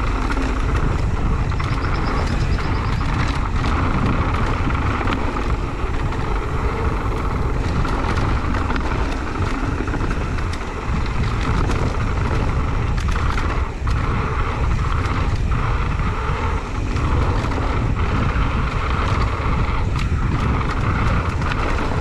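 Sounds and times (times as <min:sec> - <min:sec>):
bike rattles and knocks: 0:00.0 - 0:22.0
bike tyres rolling over dirt: 0:00.0 - 0:22.0
wind buffeting microphone: 0:00.0 - 0:22.0.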